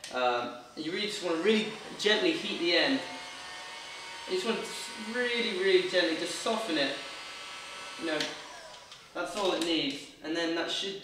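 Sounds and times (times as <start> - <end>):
heat gun blowing hum: 0.0 - 10.0.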